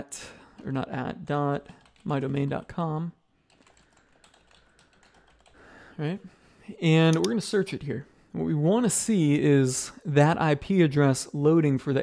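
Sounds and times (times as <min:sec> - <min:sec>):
keyboard typing clicks: 0:03.5 - 0:05.6, 0:07.1 - 0:07.4.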